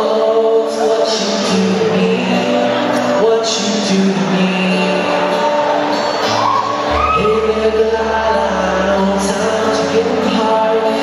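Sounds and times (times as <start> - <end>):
man singing: 0.0 - 11.0
strummed acoustic guitar: 0.0 - 11.0.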